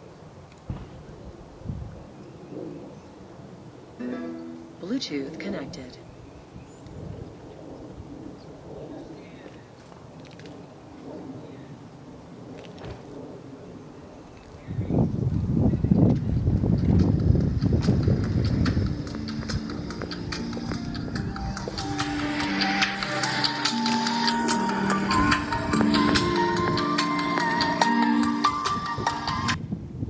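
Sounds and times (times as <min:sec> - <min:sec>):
fast ticking percussion: 0:16.9 - 0:29.6
music from portable speaker: 0:17.2 - 0:29.6
bass-heavy swell: 0:18.5 - 0:28.9.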